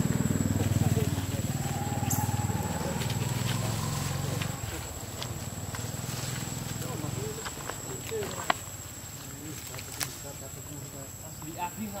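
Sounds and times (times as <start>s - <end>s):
steady low hum: 0.0s - 7.9s
leaves and stems rustling: 0.0s - 11.3s.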